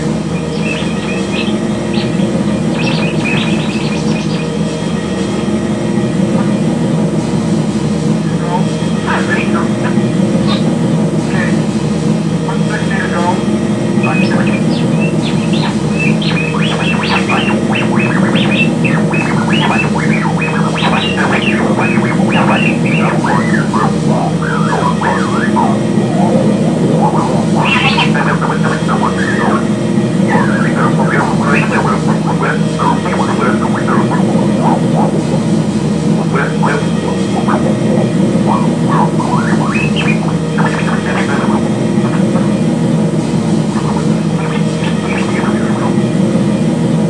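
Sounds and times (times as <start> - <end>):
layered low drone: 0.0 - 47.0
high chirping figures: 0.3 - 4.7, 13.9 - 35.2.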